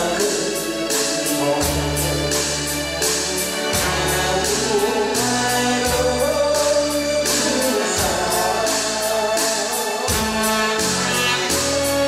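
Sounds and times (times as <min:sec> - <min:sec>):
karaoke backing track: 0:00.0 - 0:12.0
man singing into microphone: 0:00.0 - 0:12.0.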